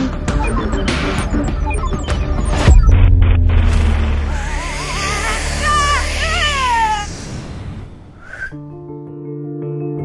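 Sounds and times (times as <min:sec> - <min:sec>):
high wavering wail: 0:04.2 - 0:07.6.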